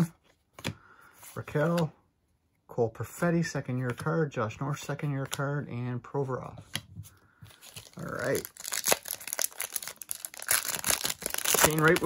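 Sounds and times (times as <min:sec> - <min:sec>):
foil wrapper crinkling and tearing: 0:07.6 - 0:12.0.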